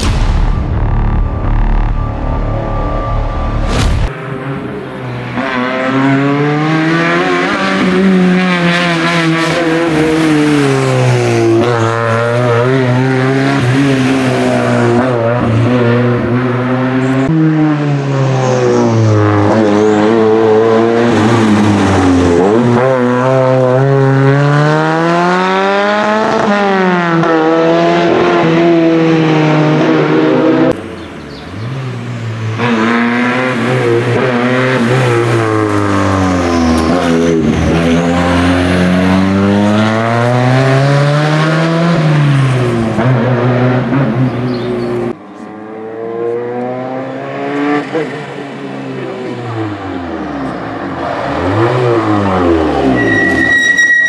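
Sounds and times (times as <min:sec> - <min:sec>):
rally car engine at full throttle: 0:00.0 - 0:54.0.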